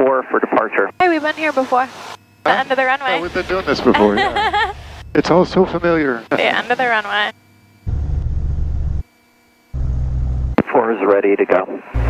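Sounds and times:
aircraft engine drone over intercom: 0:00.0 - 0:09.0
person speaking: 0:02.5 - 0:07.3.

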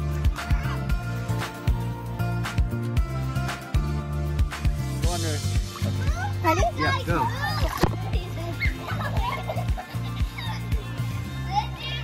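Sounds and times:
children's voices and squeals: 0:00.0 - 0:01.3, 0:05.8 - 0:12.0
background music with steady beat: 0:00.0 - 0:12.0.

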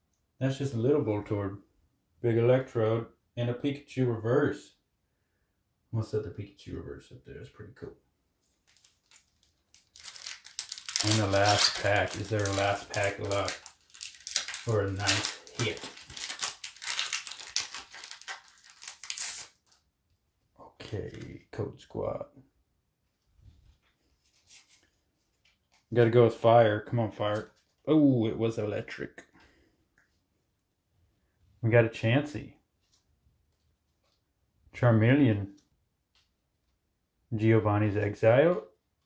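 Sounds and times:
cards rustling in hands: 0:08.4 - 0:19.9, 0:20.8 - 0:21.5, 0:23.6 - 0:26.0, 0:27.2 - 0:27.9
foil pack crinkling: 0:08.6 - 0:19.8.

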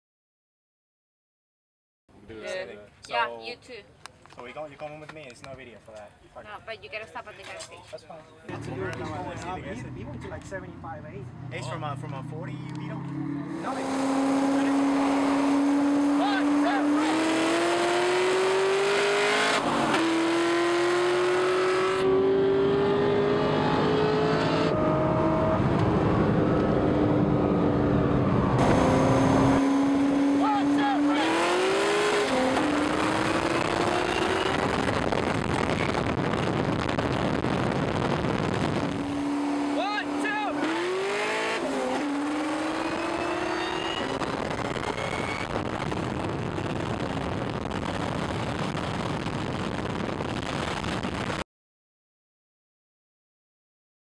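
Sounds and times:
car engine accelerating hard: 0:08.5 - 0:49.2.

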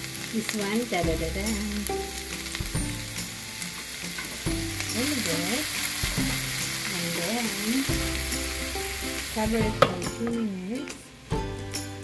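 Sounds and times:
food sizzling in a frying pan: 0:00.0 - 0:12.0.

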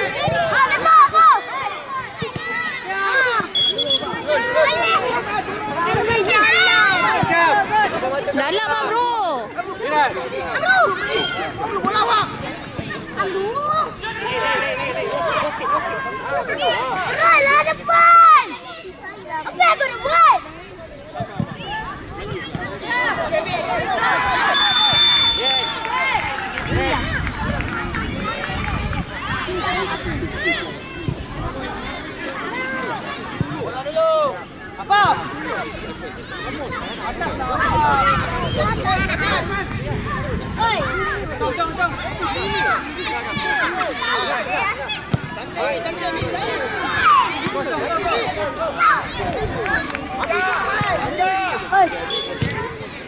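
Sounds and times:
children shouting: 0:00.0 - 0:53.0.

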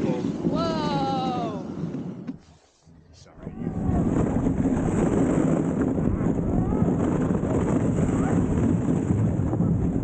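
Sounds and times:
wind on microphone: 0:00.0 - 0:02.6, 0:03.3 - 0:10.0.

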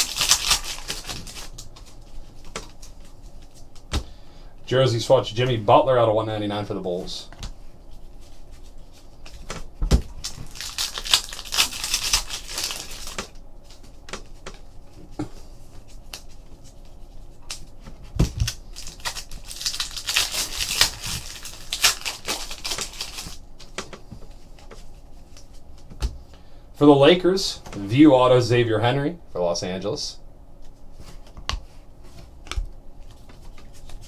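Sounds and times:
cards rustling: 0:00.0 - 0:04.1, 0:10.2 - 0:15.2, 0:15.8 - 0:25.6.

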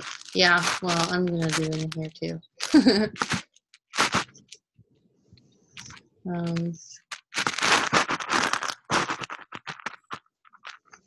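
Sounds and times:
crinkling and crackling on microphone: 0:00.0 - 0:11.0.

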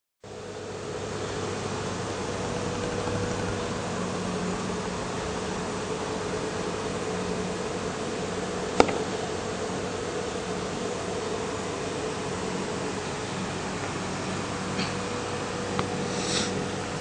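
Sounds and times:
faint low hum: 0:00.3 - 0:08.1
steady hiss: 0:14.8 - 0:17.0.

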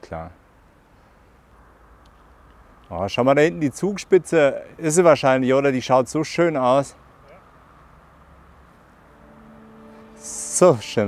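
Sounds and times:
soft background music: 0:08.9 - 0:11.0.

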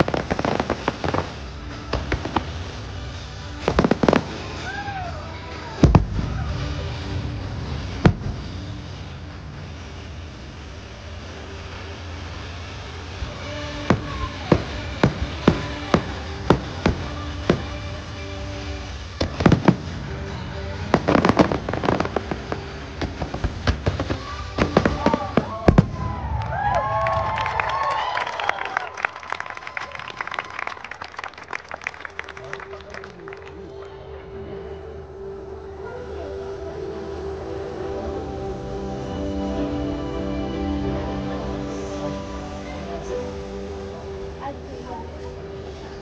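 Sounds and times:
fireworks bangs and crackles: 0:00.0 - 0:34.9
music soundtrack: 0:00.0 - 0:46.0.

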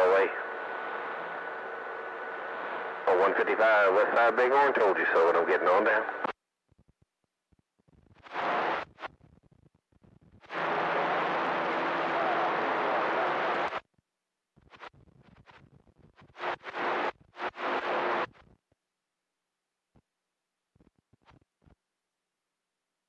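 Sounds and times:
radio crackles: 0:00.0 - 0:01.5, 0:02.3 - 0:06.4, 0:07.9 - 0:13.8, 0:14.6 - 0:18.6
radio static hiss: 0:00.0 - 0:06.4, 0:08.0 - 0:13.8, 0:14.6 - 0:18.5.

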